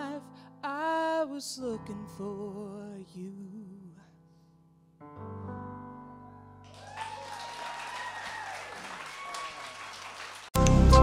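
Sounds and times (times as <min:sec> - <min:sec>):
audience applauding: 0:06.7 - 0:10.8.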